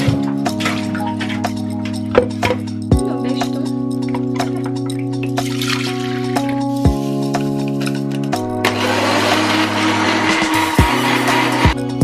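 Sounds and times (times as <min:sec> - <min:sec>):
background music with steady beat: 0:00.0 - 0:12.0
blender running: 0:08.6 - 0:11.8.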